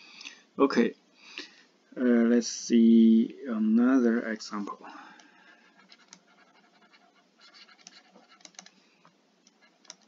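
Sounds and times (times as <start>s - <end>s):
stylus tapping on tablet screen: 5.2s - 8.8s, 9.4s - 10.0s
small clicks: 7.5s - 8.8s, 9.4s - 10.0s.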